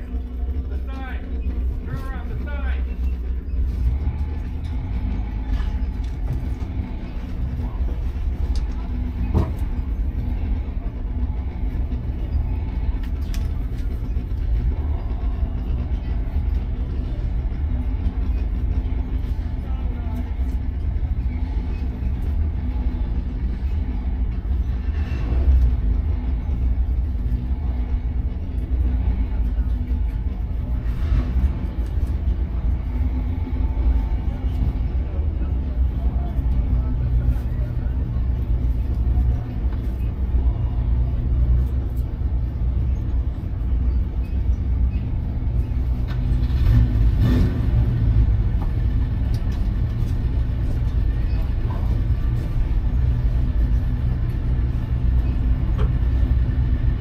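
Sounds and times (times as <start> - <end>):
race car engine idling: 0.0 - 57.0.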